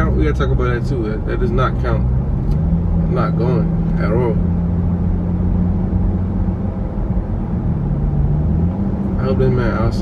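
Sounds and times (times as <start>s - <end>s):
car engine drone: 0.0s - 10.0s.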